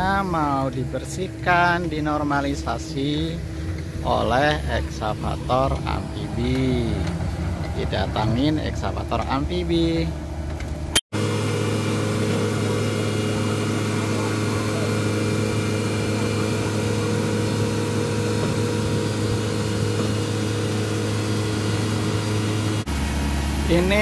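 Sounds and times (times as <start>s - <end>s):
diesel engine idling: 0.0s - 24.0s.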